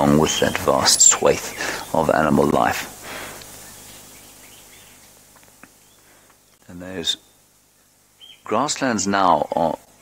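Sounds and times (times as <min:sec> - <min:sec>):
faint outdoor hiss: 0:00.0 - 0:10.0
faint bird chirps: 0:03.4 - 0:10.0.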